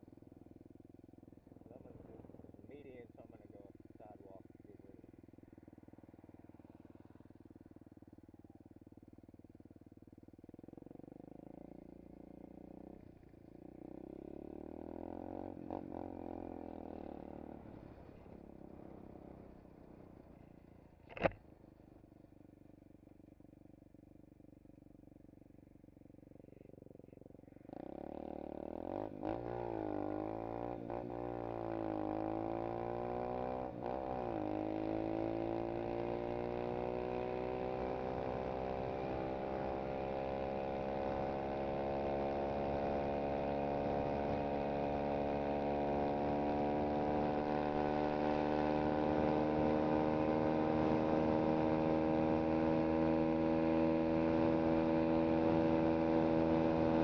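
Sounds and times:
motorbike engine accelerating: 0:26.5 - 0:57.0.

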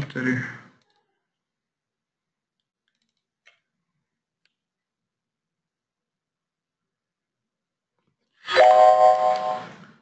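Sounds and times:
computer mouse clicks: 0:02.6 - 0:03.6.

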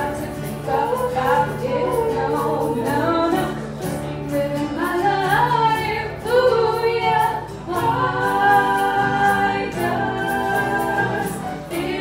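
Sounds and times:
keyboard: 0:00.0 - 0:12.0
strummed acoustic guitar: 0:00.0 - 0:12.0
women singing in harmony: 0:00.0 - 0:12.0.

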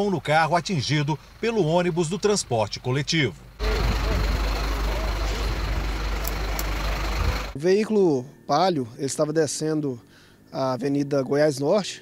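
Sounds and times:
large vehicle engine idling: 0:00.0 - 0:07.6
indistinct voices: 0:00.0 - 0:08.3.

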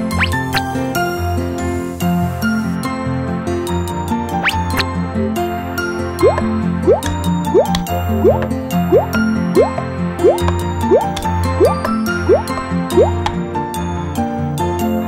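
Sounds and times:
cartoon background music: 0:00.0 - 0:15.0.

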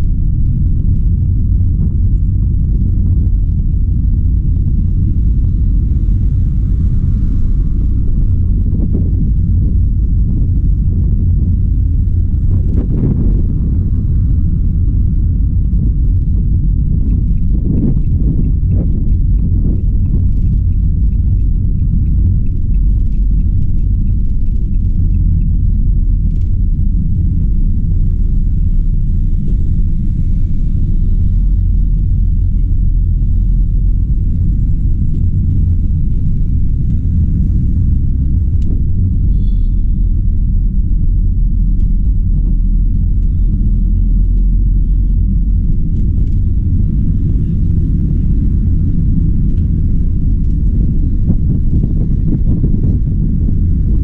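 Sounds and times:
van driving rumble inside cab: 0:00.0 - 0:54.0.

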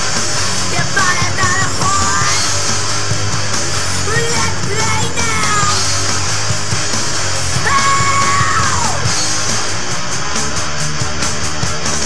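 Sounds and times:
loud punk rock song: 0:00.0 - 0:12.0
yelled vocal note sliding down: 0:07.4 - 0:09.3.

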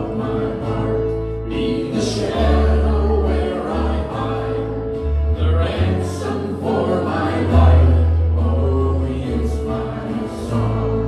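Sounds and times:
keyboard with low bass notes: 0:00.0 - 0:11.0
men and women singing together: 0:00.0 - 0:11.0
strummed acoustic guitars: 0:00.0 - 0:11.0.

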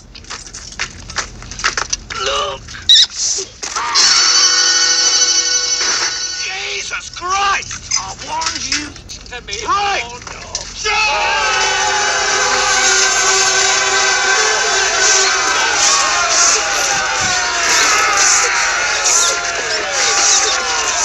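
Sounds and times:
short pitch-bending cries: 0:02.9 - 0:03.1, 0:03.8 - 0:06.5
men yelling a battle cry: 0:10.8 - 0:21.0
film music: 0:11.0 - 0:21.0.

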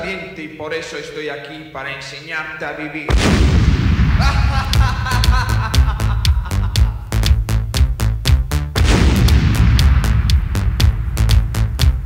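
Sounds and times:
booming hit: 0:03.1 - 0:07.8, 0:08.7 - 0:12.0
heavy bass: 0:03.1 - 0:12.0
synth notes: 0:04.2 - 0:12.0
quick even drum pattern: 0:04.3 - 0:12.0.

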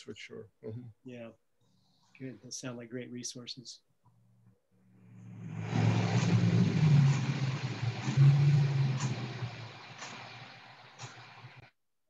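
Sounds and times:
steady low hum: 0:05.0 - 0:11.7
rushing noise: 0:05.1 - 0:11.7.

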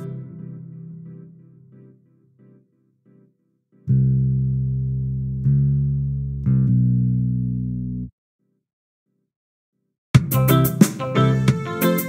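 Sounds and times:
electric bass held notes: 0:03.9 - 0:08.1.

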